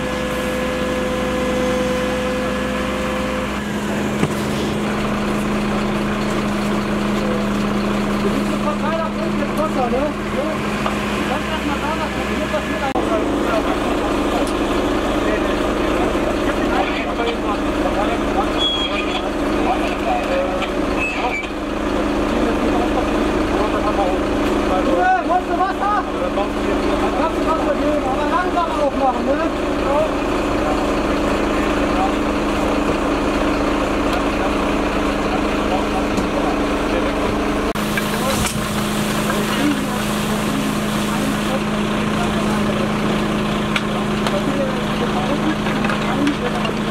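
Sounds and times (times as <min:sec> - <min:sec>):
truck engine humming: 0:00.0 - 0:46.9
background voices: 0:33.9 - 0:46.9.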